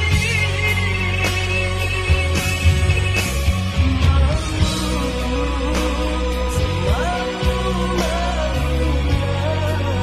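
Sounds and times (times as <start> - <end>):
slow rock song: 0.0 - 10.0.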